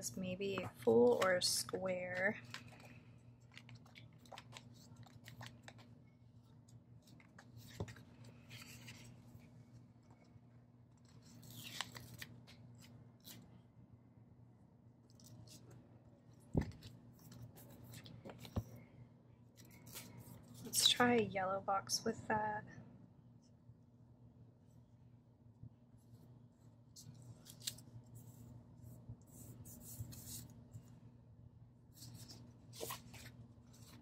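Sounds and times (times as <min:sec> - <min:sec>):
faint low hum: 0:00.0 - 0:34.0
pages turning: 0:01.0 - 0:10.3, 0:11.0 - 0:13.5, 0:16.4 - 0:18.8, 0:19.6 - 0:21.0, 0:26.9 - 0:28.5, 0:29.2 - 0:30.9, 0:31.9 - 0:34.0.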